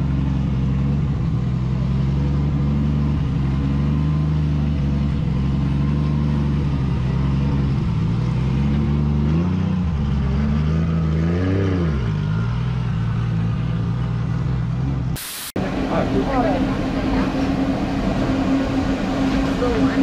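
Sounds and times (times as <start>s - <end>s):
car engine idling: 0.0s - 10.3s, 12.6s - 20.0s
engine revving: 0.0s - 20.0s.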